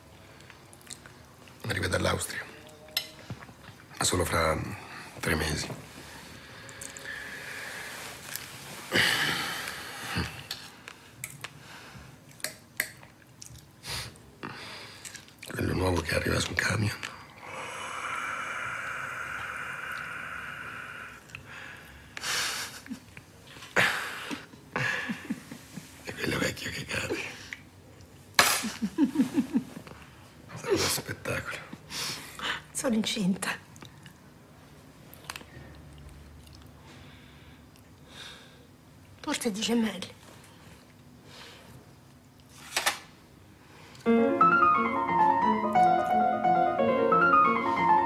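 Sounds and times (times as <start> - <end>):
person breathing out: 17.4 - 22.5
person laughing: 28.6 - 29.8.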